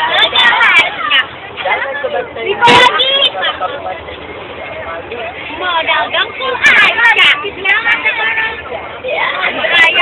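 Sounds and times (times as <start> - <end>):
bus engine running: 0.0 - 10.0
young people chattering: 0.0 - 10.0.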